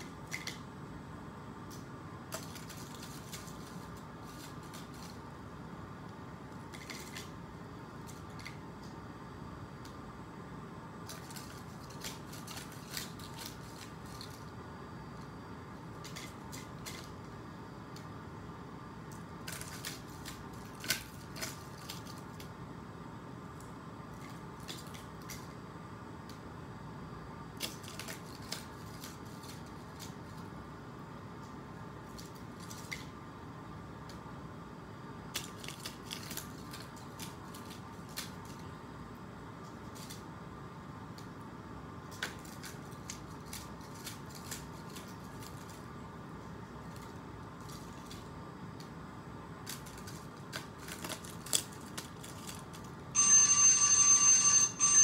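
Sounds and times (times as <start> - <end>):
steady hum: 0.0 - 55.0
paper rustling: 2.3 - 5.3, 11.0 - 14.5, 27.6 - 30.5, 42.1 - 45.9, 49.6 - 53.0
paper clips clicking and clinking: 49.7 - 52.9.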